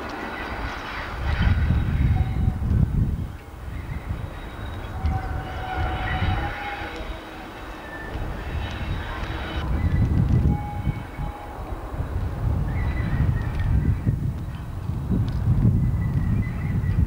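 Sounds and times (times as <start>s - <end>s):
wheels squealing on rails: 0.0s - 14.9s
diesel locomotive engine rumble: 0.0s - 17.0s.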